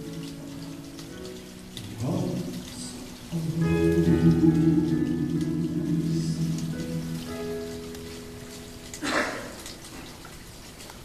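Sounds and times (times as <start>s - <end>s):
held keyboard chord: 3.2s - 9.0s
rush of noise: 3.3s - 8.5s.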